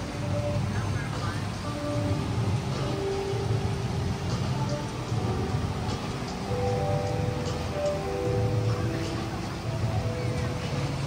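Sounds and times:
even hiss: 0:00.0 - 0:11.0
faint held music notes: 0:00.0 - 0:11.0.

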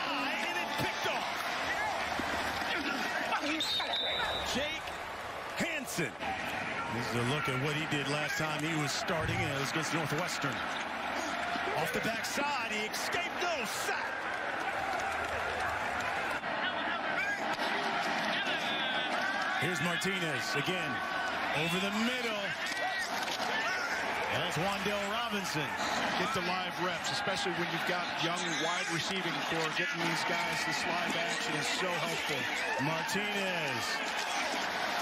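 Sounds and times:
players shouting: 0:00.0 - 0:35.0
referee's whistle: 0:03.4 - 0:04.8.

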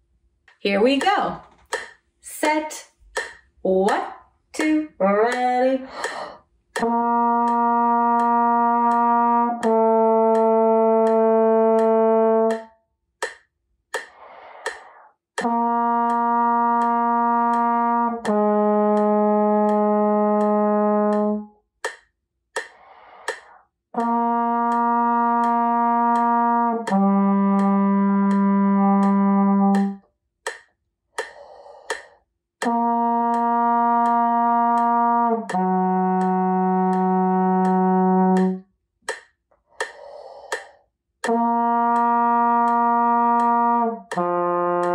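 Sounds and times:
steady ticking click: 0:00.4 - 0:44.9
trombone long tones: 0:06.8 - 0:12.7, 0:15.4 - 0:21.6, 0:24.0 - 0:30.0, 0:32.6 - 0:38.6, 0:41.2 - 0:44.9
breath drawn: 0:14.1 - 0:15.2, 0:22.7 - 0:23.7, 0:31.2 - 0:32.3, 0:39.6 - 0:40.9.

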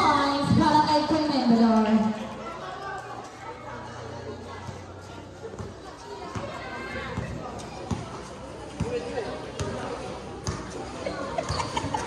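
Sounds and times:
basketball bouncing on court: 0:05.5 - 0:10.8, 0:11.4 - 0:12.0.

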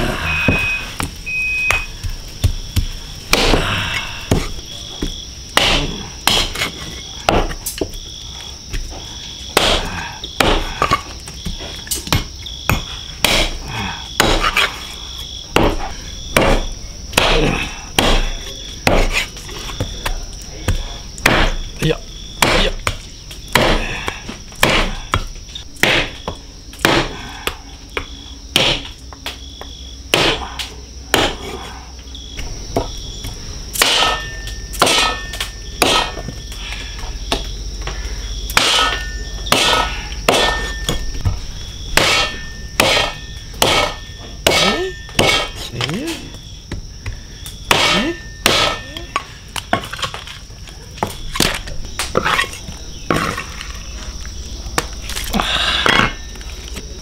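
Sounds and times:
insects chirring: 0:00.0 - 0:57.0
pulsing insect chirr: 0:00.0 - 0:57.0
cleaver chopping bone on wood: 0:01.7 - 0:06.7, 0:07.3 - 0:07.6, 0:09.5 - 0:11.0, 0:12.0 - 0:13.6, 0:14.2 - 0:14.7, 0:15.6 - 0:19.2, 0:19.8 - 0:21.7, 0:22.4 - 0:29.0, 0:30.1 - 0:30.4, 0:31.1 - 0:31.4, 0:33.8 - 0:34.2, 0:34.8 - 0:36.3, 0:38.5 - 0:41.3, 0:42.0 - 0:45.9, 0:46.7 - 0:48.8.

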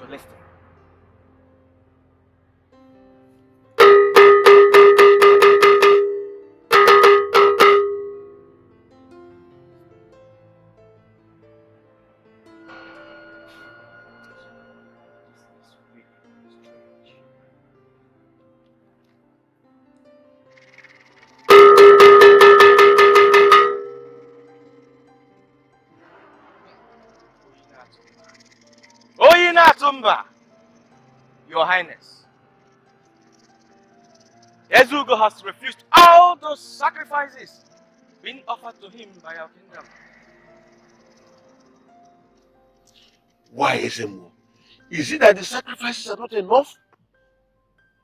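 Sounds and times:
faint held background tone: 0:00.0 - 0:48.0
metal gong struck rapidly: 0:03.8 - 0:08.3, 0:21.5 - 0:24.4
bell-like metallic percussion strikes: 0:03.8 - 0:08.4, 0:21.5 - 0:24.9.

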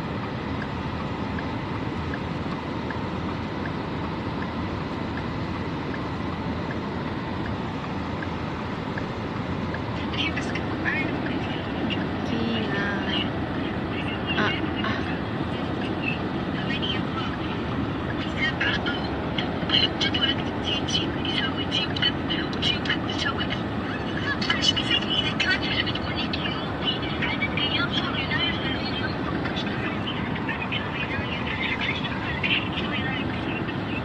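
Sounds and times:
car engine and road noise: 0:00.0 - 0:34.0.

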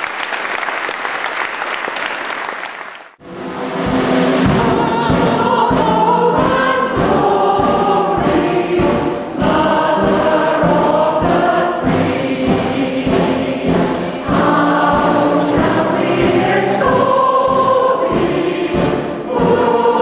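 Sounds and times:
choir singing sustained notes: 0:03.2 - 0:20.0.

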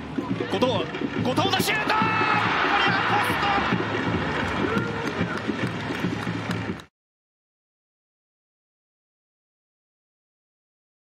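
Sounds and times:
crowd noise: 0:00.0 - 0:06.9
sharp claps: 0:00.9 - 0:06.9.

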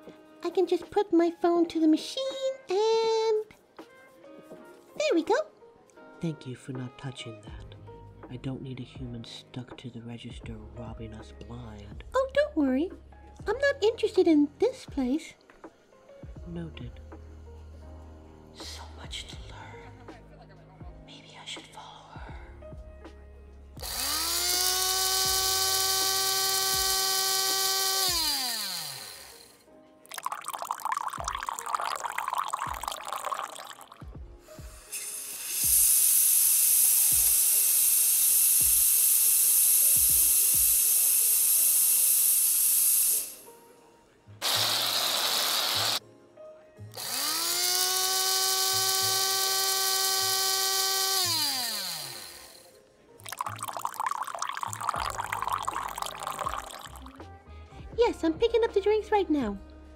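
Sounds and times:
coffee grinder motor whining: 0:23.8 - 0:33.9, 0:34.6 - 0:43.5, 0:44.4 - 0:46.0, 0:47.0 - 0:52.7, 0:53.3 - 0:57.2
steam wand hissing: 0:34.5 - 0:43.5.

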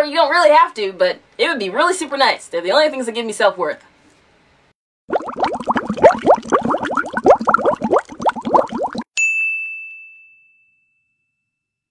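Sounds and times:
bright bell-like ding: 0:09.2 - 0:11.6.

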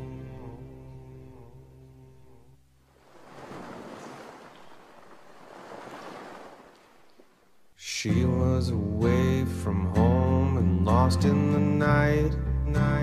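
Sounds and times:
soft wash of noise: 0:02.8 - 0:07.9.

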